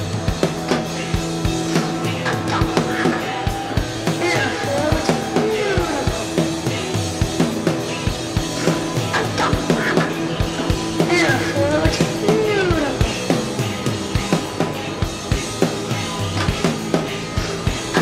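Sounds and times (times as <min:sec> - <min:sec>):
droning tones: 0:00.0 - 0:18.0
drum kit loop: 0:00.0 - 0:18.0.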